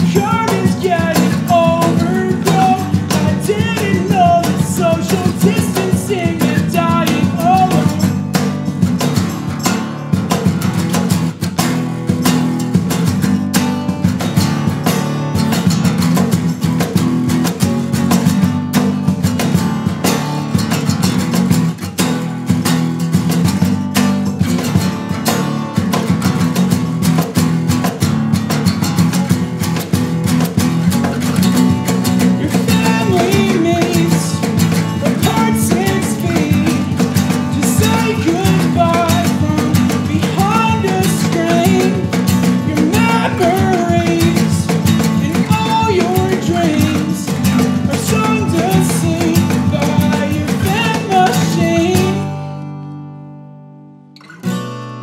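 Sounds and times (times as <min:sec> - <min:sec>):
low guitar notes: 0:00.0 - 0:53.5
acoustic guitar strummed fast: 0:00.0 - 0:55.0.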